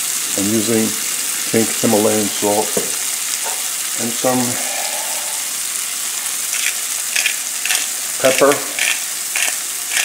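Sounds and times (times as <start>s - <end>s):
vegetables sizzling in butter: 0.0s - 10.0s.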